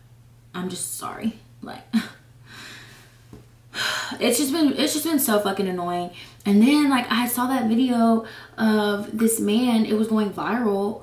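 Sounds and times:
woman exhaling breathily: 3.7 - 4.2.

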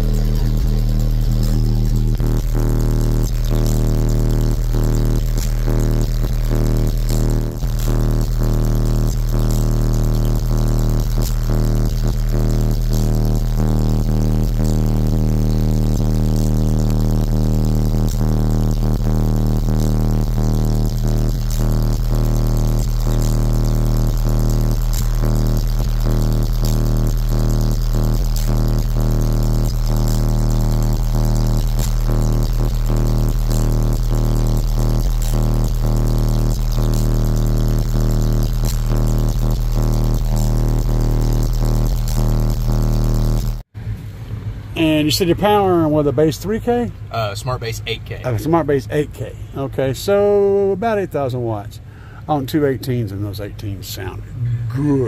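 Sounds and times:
loud low bass note: 0.0 - 43.6.

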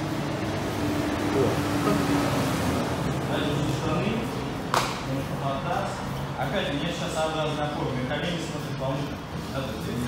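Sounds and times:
sharp smack: 4.7 - 5.0.

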